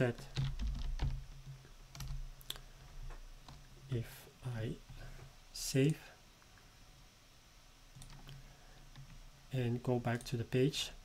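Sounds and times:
computer keyboard typing: 0:00.1 - 0:01.3, 0:01.9 - 0:02.6, 0:08.0 - 0:08.4.

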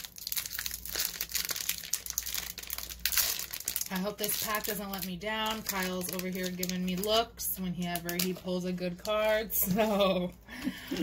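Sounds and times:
wrapper crinkling: 0:00.0 - 0:10.2.

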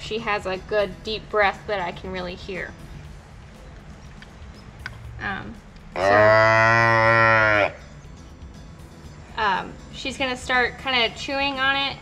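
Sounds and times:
calf mooing: 0:06.0 - 0:07.8.

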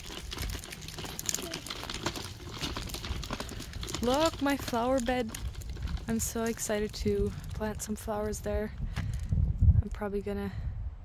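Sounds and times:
footsteps crunching on wet gravel: 0:00.0 - 0:08.4.

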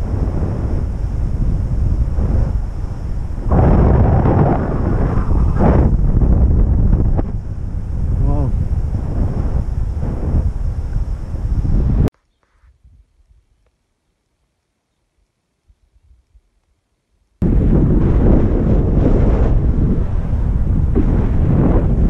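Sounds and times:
wind buffeting microphone: 0:00.0 - 0:12.1, 0:17.4 - 0:22.0.

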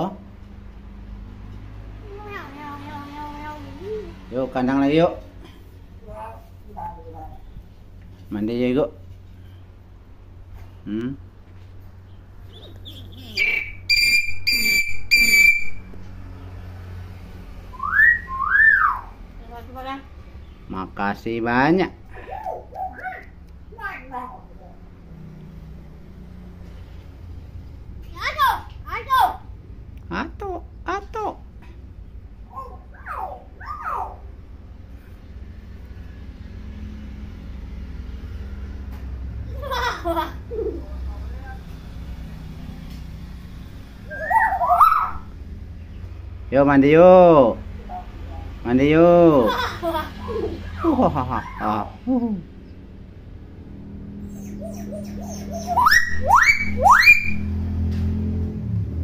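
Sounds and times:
myna bird whistling: 0:12.4 - 0:15.9, 0:17.7 - 0:19.2, 0:44.0 - 0:45.3, 0:54.2 - 0:57.5.

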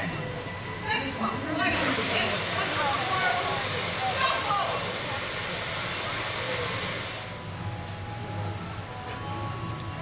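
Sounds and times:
faint distant voices: 0:00.0 - 0:10.0
steady hiss: 0:01.3 - 0:10.0.

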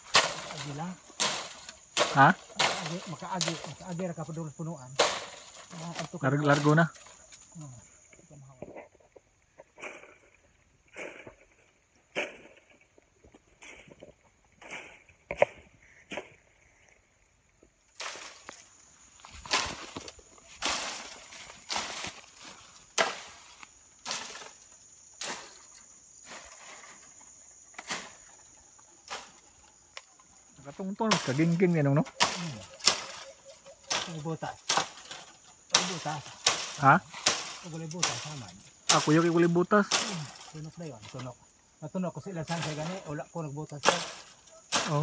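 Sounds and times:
bamboo rustling and snapping: 0:00.0 - 0:08.7, 0:17.9 - 0:41.6, 0:42.5 - 0:45.0.

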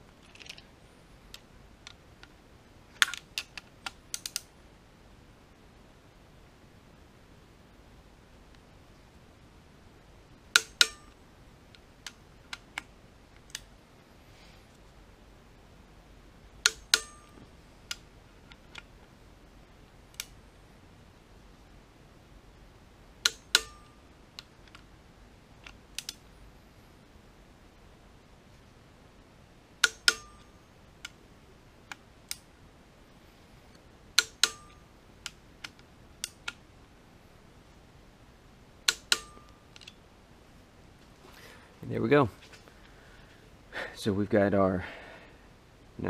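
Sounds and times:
light wrench clicks: 0:03.0 - 0:04.5, 0:16.6 - 0:18.9, 0:23.2 - 0:24.8, 0:25.6 - 0:26.2, 0:29.8 - 0:31.2
metallic ring: 0:10.5 - 0:11.2, 0:16.7 - 0:17.5, 0:23.3 - 0:24.1, 0:29.8 - 0:30.7, 0:34.2 - 0:34.9, 0:38.9 - 0:39.7
torque wrench clicking: 0:29.8 - 0:31.2.

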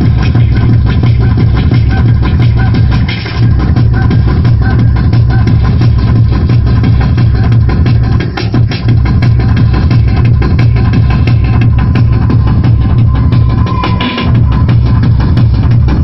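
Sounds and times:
loud fast techno music: 0:00.0 - 0:16.0.

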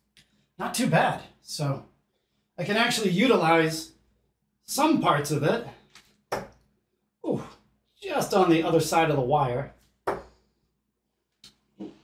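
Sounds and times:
dart striking dartboard: 0:06.3 - 0:06.6, 0:10.1 - 0:10.3.

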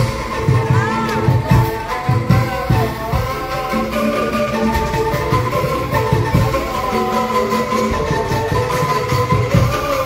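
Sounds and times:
bamboo angklung melody: 0:00.0 - 0:10.0.

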